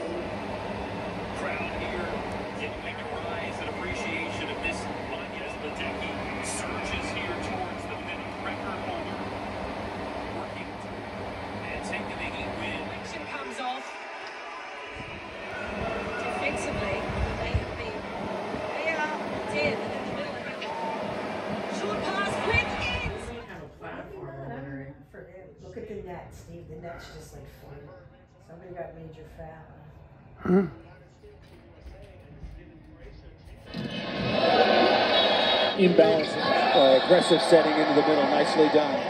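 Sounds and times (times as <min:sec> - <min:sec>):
arena crowd noise: 0:00.0 - 0:24.8, 0:31.0 - 0:39.0.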